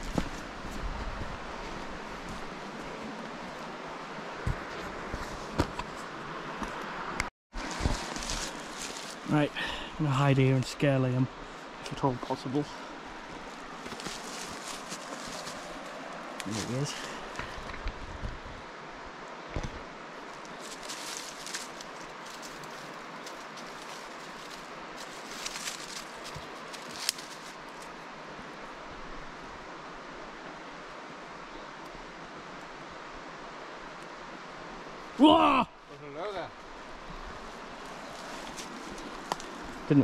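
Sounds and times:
river water running over stones: 0.0s - 40.0s
rustling undergrowth: 0.0s - 40.0s
man yelling: 35.2s - 35.8s.

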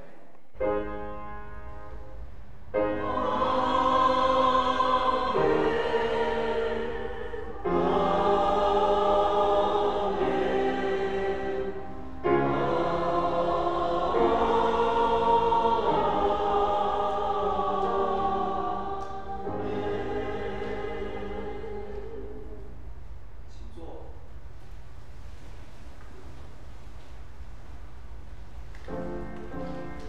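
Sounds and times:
choir singing held chords: 0.6s - 23.4s.

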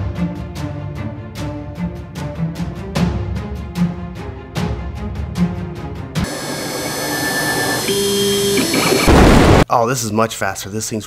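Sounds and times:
router spindle high whine: 6.2s - 9.1s.

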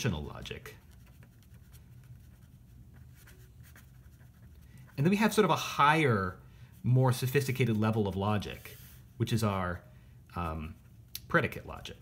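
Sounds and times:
pen scratching on paper: 0.8s - 4.9s.

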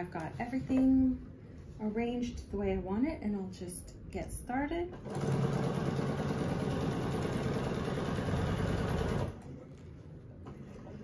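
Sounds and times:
sewing machine stitching: 5.0s - 9.4s.

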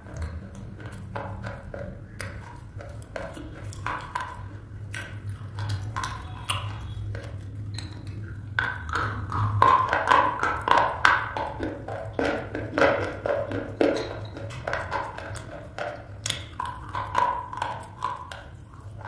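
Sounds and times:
biting and chewing slate pencil: 0.0s - 19.0s.

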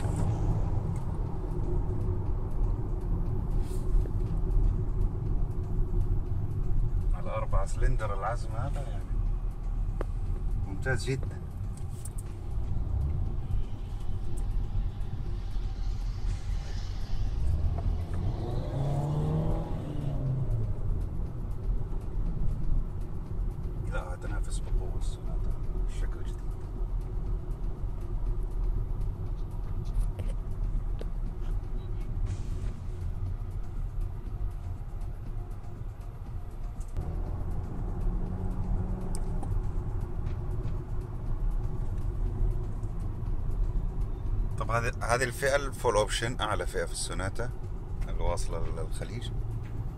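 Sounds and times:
car engine and road rumble: 0.0s - 49.9s.

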